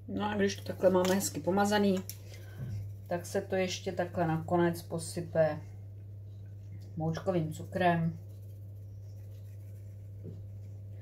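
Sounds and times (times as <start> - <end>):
steady low hum: 0.0 - 11.0
metal sugar shaker shaking: 7.2 - 10.7.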